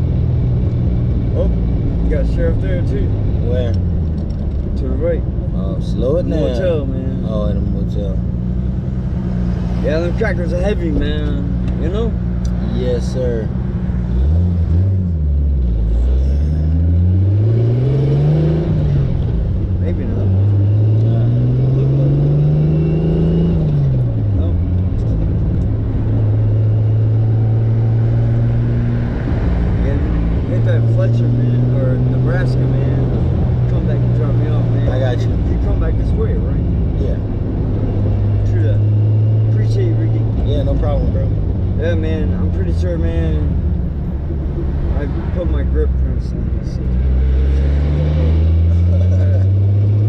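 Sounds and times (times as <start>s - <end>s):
turbocharged car engine accelerating: 0.0s - 50.0s.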